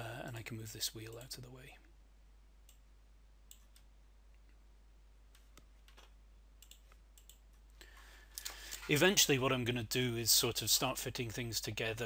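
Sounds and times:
computer mouse clicking: 0:03.5 - 0:03.9, 0:05.4 - 0:07.5.

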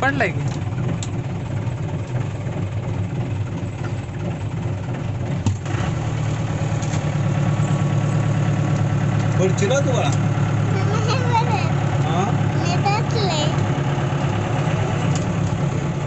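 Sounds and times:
diesel engine idling: 0:00.0 - 0:16.0.

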